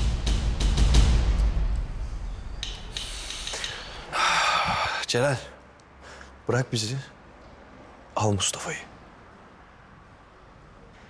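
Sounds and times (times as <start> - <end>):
loud hissing noise: 2.6 - 5.1.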